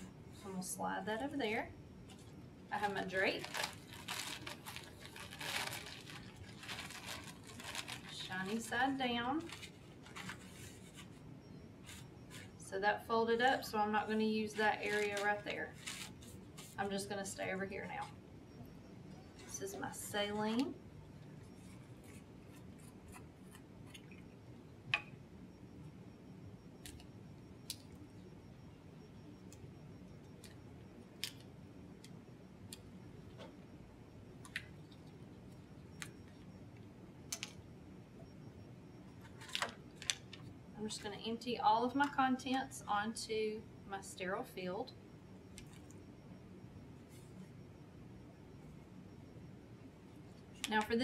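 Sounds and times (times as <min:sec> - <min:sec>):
faint room hum: 0:00.0 - 0:51.0
paper drape rustling: 0:09.4 - 0:11.2, 0:14.9 - 0:16.8.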